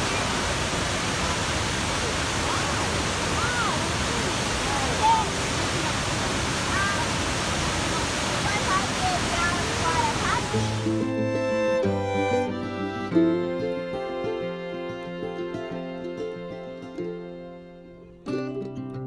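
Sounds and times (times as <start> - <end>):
waterfall rushing: 0.0 - 17.4.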